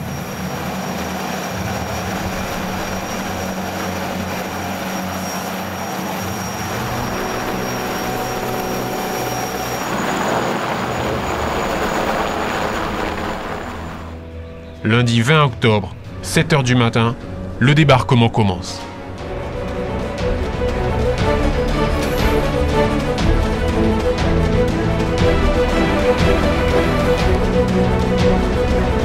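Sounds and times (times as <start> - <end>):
helicopter engine and rotor: 0.0 - 14.2, 19.2 - 29.0.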